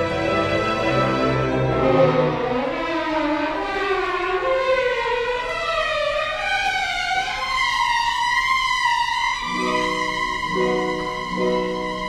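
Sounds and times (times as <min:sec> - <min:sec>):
strings sliding upward: 0:07.1 - 0:12.0.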